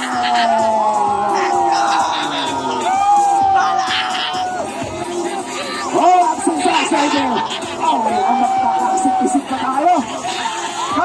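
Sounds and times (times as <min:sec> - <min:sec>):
background music: 0:00.0 - 0:11.0
crowd cheering and whooping: 0:00.0 - 0:11.0.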